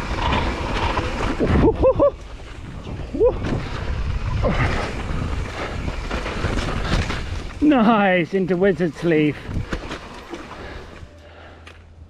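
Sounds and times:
bike rattling: 0.0 - 12.0
bike tyres rolling on dirt: 0.0 - 12.0.

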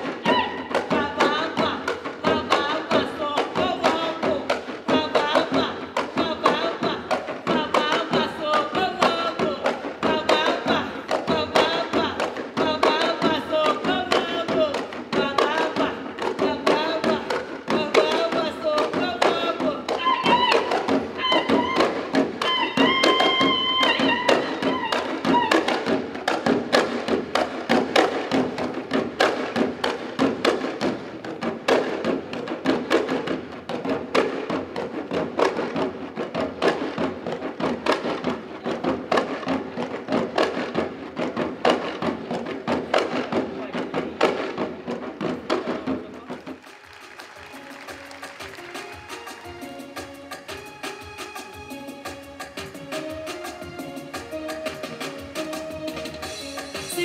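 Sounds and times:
person singing melody: 0.0 - 26.0, 52.7 - 57.0
fast folk drumming: 0.0 - 57.0.

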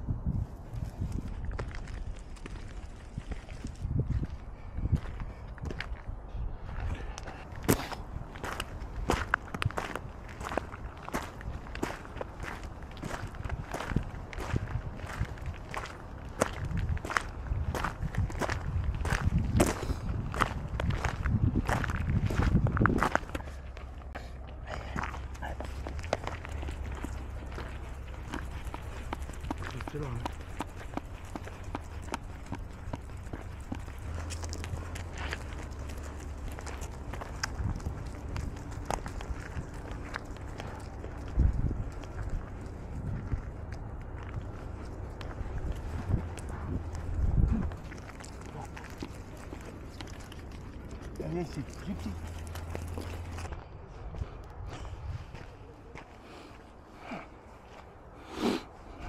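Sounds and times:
low rumble: 0.0 - 58.2
footsteps crunching on gravel: 0.4 - 59.0.

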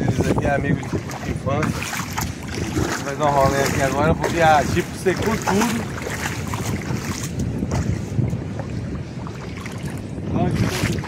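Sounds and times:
surf washing: 0.0 - 11.0
wind buffeting microphone: 0.0 - 11.0.

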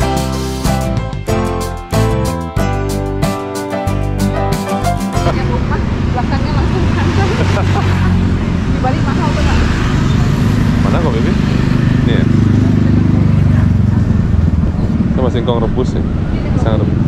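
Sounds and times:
vehicle engine running: 4.0 - 17.0
people chattering: 13.0 - 15.1.

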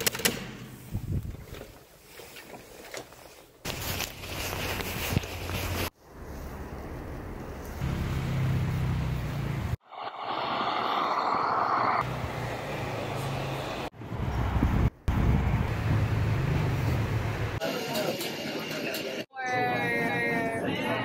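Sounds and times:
traffic rumble: 3.6 - 17.6.

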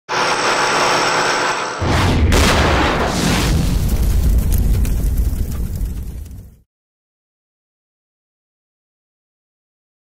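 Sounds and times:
power tool machining metal: 0.1 - 1.8
deep rumble: 1.8 - 6.6.

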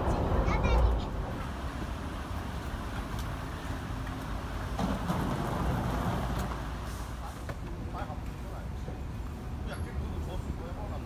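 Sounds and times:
rumble of road traffic: 0.0 - 11.0.

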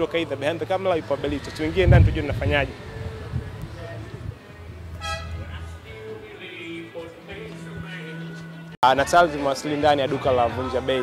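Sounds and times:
street traffic rumble: 0.0 - 11.0
vehicle horn toot: 5.0 - 5.7.

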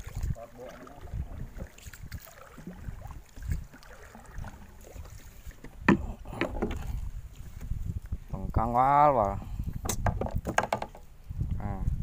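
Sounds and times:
water sloshing: 0.0 - 8.1
paddle dipping through water: 0.0 - 8.3
dull knocks against boat hull: 9.8 - 11.0.

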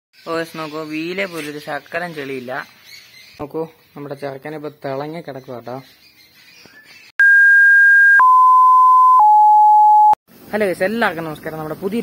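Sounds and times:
descending electronic beep tones: 7.2 - 10.2.

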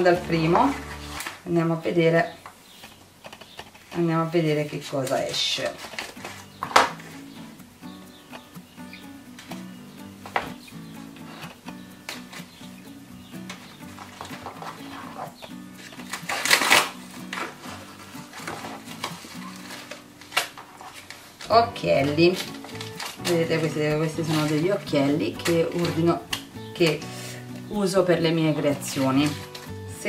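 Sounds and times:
soft background music: 0.0 - 30.0
padded envelope rustling: 5.0 - 7.4, 13.4 - 27.7, 28.7 - 29.8
scissors snipping: 15.8 - 17.6.

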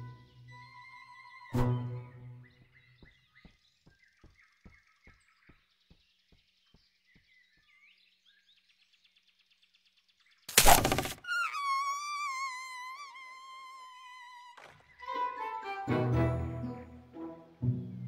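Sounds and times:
faint bird chirps: 0.0 - 15.2.

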